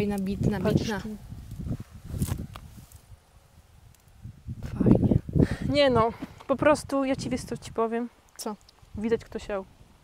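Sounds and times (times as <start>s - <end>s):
leaves rustling: 0.0s - 6.6s.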